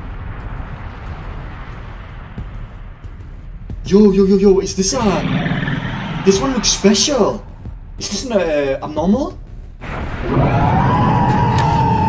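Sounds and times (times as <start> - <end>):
rushing rumbling noise: 0.0 - 12.0.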